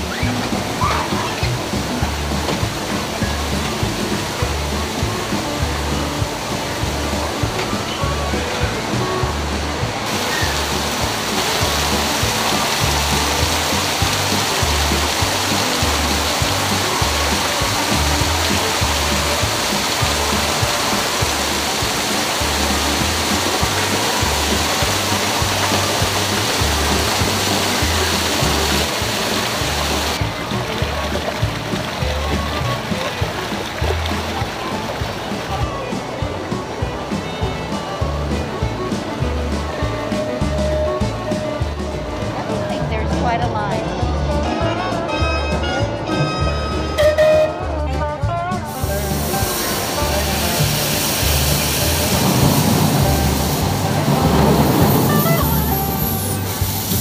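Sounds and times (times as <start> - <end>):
waterfall rushing: 0.0 - 45.2, 48.6 - 57.0
background music with bass beat: 0.0 - 57.0.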